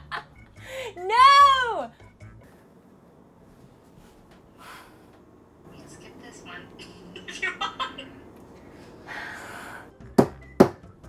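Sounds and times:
woman breathing out: 4.5 - 5.2, 8.7 - 9.9.

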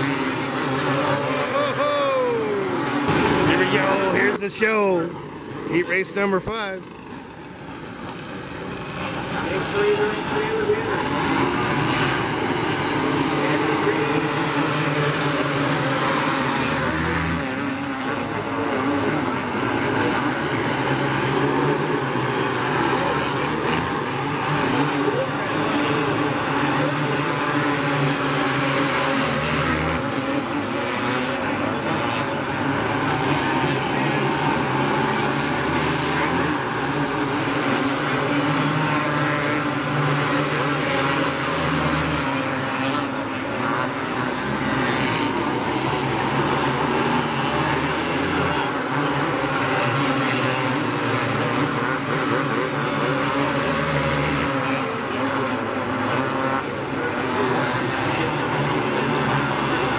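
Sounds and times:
karts racing engines: 0.0 - 59.9.

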